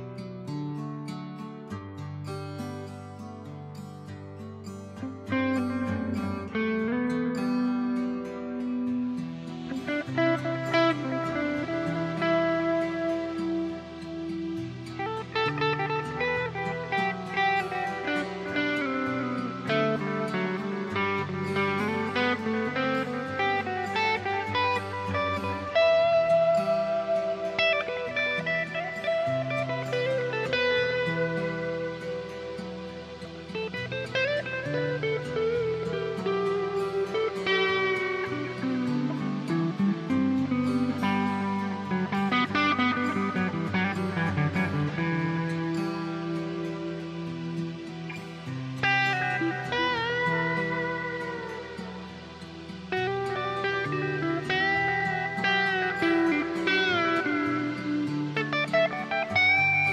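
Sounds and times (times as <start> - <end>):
electric guitar: 0.0 - 59.9.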